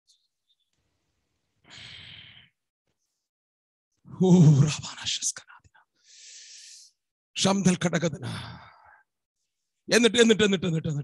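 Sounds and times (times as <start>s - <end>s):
breath drawn close to microphone: 6.0s - 7.0s.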